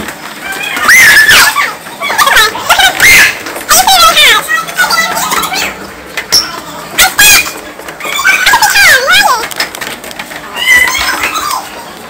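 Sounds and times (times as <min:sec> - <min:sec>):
young women squealing: 0:10.5 - 0:11.7.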